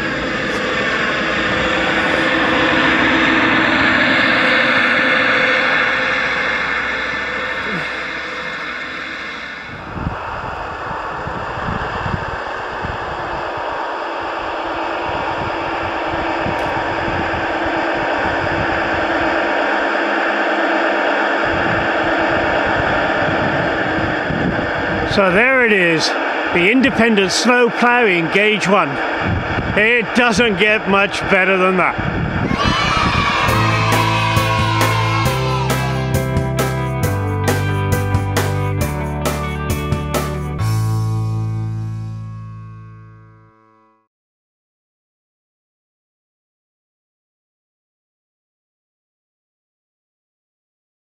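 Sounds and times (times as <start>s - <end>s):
model locomotive diesel engine sound: 0.0s - 32.3s, 33.4s - 43.0s.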